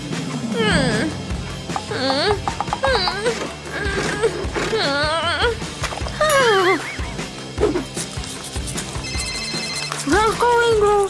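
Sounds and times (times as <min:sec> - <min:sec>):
background music: 0:00.0 - 0:11.0
telephone ringing: 0:09.0 - 0:10.4.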